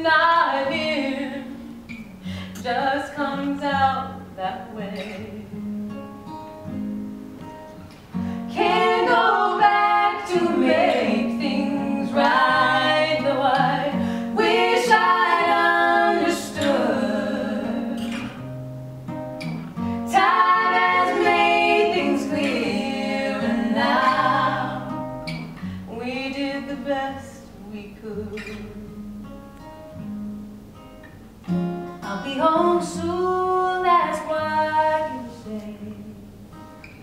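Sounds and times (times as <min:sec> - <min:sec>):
women singing together: 0:00.0 - 0:01.7, 0:02.6 - 0:05.4, 0:08.5 - 0:18.4, 0:20.0 - 0:28.8, 0:32.1 - 0:36.2
acoustic guitar: 0:00.0 - 0:37.0.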